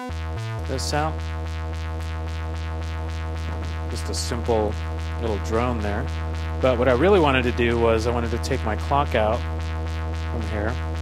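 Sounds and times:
synthesizer low drone: 0:00.0 - 0:11.0.

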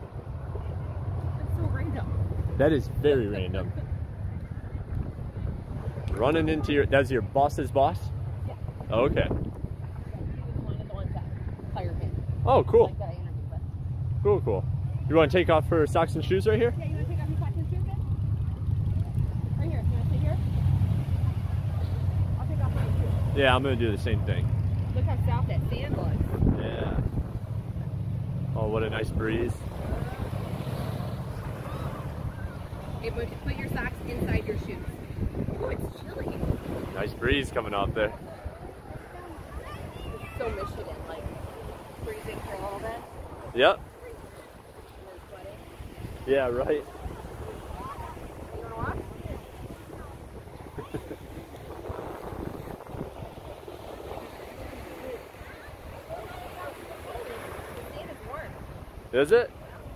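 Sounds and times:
wind on microphone: 0:00.0 - 0:14.0, 0:16.0 - 0:59.9
faint voices: 0:14.3 - 0:59.9.

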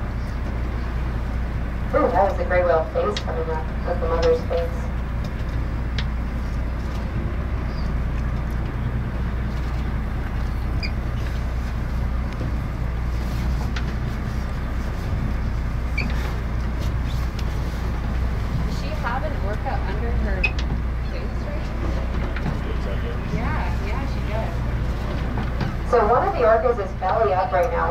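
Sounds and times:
boat engine humming: 0:00.0 - 0:27.9.

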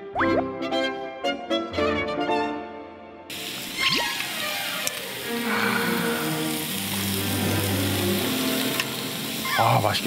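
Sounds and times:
background music of low notes: 0:00.0 - 0:03.3, 0:04.6 - 0:10.0
meat sizzling on a grill: 0:03.3 - 0:10.0.

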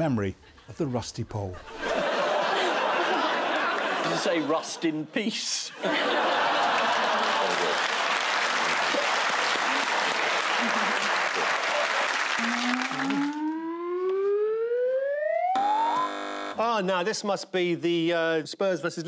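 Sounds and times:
audience laughing and applauding: 0:01.7 - 0:04.9, 0:05.8 - 0:13.8
tone gliding upward: 0:12.4 - 0:16.5
electronic buzzer: 0:12.4 - 0:16.6.

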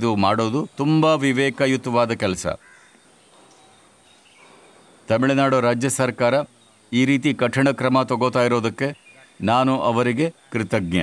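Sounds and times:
man speaking: 0:00.0 - 0:02.6, 0:05.1 - 0:11.0
faint outdoor background: 0:00.0 - 0:11.0.

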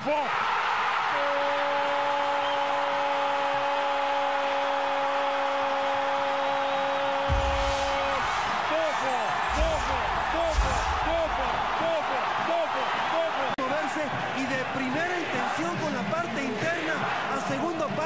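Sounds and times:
crowd noise: 0:04.4 - 0:18.0.

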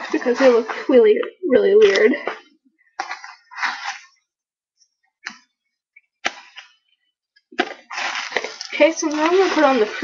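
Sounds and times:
handling rustles: 0:07.6 - 0:10.0.

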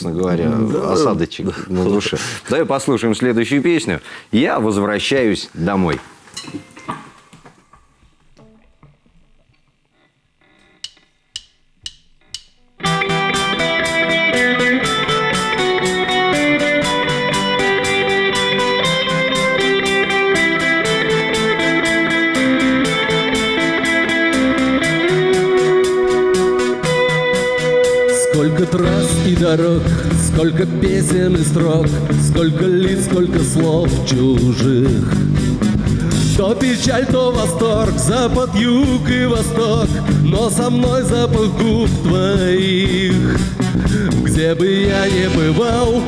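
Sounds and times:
count-in clicks: 0:10.6 - 0:12.8
drum kit: 0:10.8 - 0:46.0
bass guitar: 0:11.6 - 0:46.0
acoustic and electric guitars: 0:12.8 - 0:46.0.

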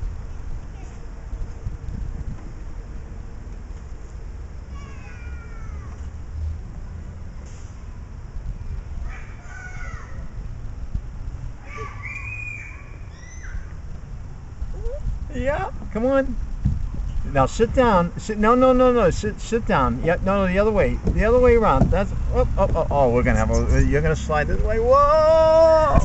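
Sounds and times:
wind rumble: 0:00.0 - 0:26.0
toddler squealing: 0:04.7 - 0:06.0, 0:09.1 - 0:10.2, 0:11.6 - 0:13.7, 0:14.8 - 0:15.1
microphone handling noise: 0:16.5 - 0:17.3.

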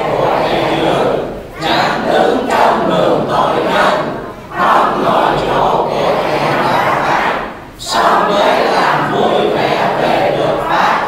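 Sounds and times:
congregation reading aloud in unison: 0:00.0 - 0:11.0.

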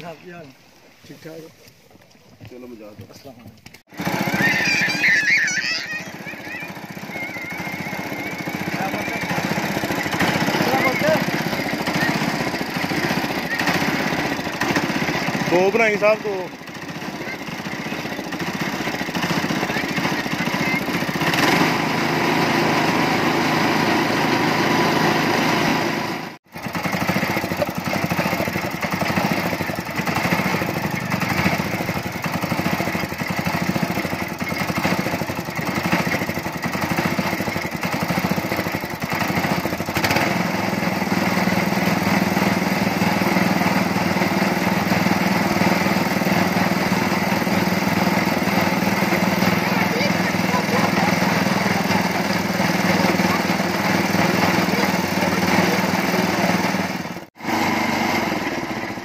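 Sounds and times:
small engine running: 0:02.8 - 0:59.0.

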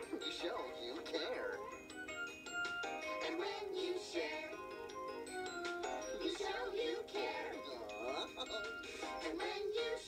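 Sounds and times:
voices singing children's song: 0:00.0 - 0:01.7, 0:03.0 - 0:04.9, 0:05.6 - 0:10.0
light instrumental backing: 0:00.0 - 0:10.0.

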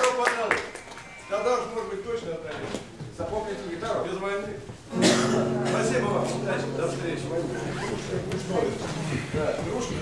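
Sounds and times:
acoustic guitar chord ringing: 0:04.9 - 0:10.0
people chattering: 0:04.9 - 0:10.0.

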